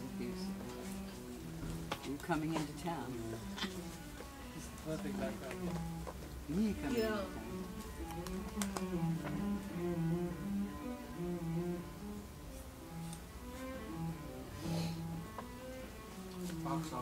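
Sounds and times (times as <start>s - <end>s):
slow melody of low notes: 0.0s - 17.0s.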